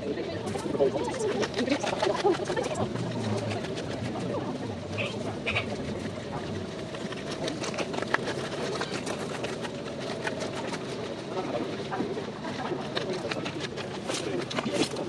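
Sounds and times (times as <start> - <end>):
people talking indistinctly: 0.0 - 7.8.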